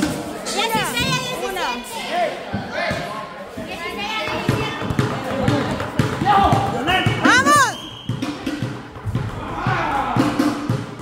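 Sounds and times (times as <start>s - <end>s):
basketball bouncing on concrete: 4.2s - 9.8s
voices shouting: 6.2s - 7.9s, 9.3s - 10.6s.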